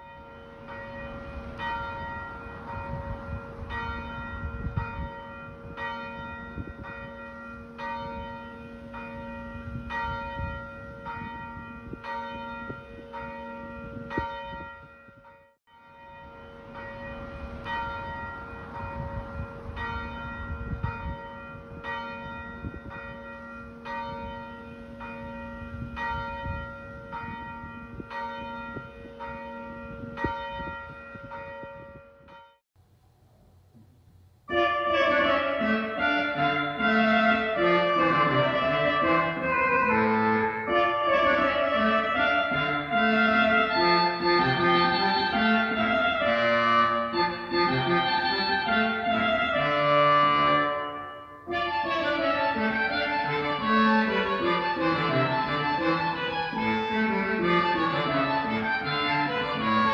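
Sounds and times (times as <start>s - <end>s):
church bells ringing: 0.0s - 32.6s, 34.5s - 59.9s.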